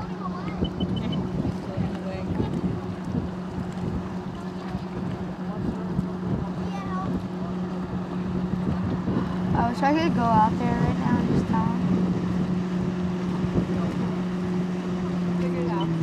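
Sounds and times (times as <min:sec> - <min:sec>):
motorboat engine idling: 0:00.0 - 0:16.0
wind buffeting microphone: 0:00.0 - 0:16.0.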